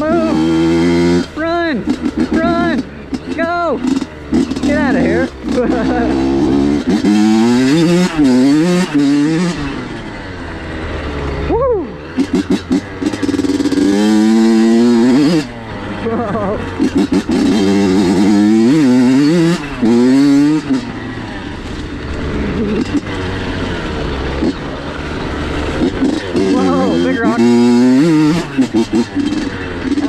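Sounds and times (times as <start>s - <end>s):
two-stroke motorcycle engine revving: 0.0s - 30.0s.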